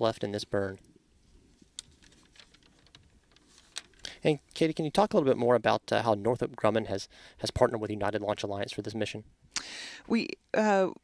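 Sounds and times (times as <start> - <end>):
faint irregular clicks: 0.8 - 4.2.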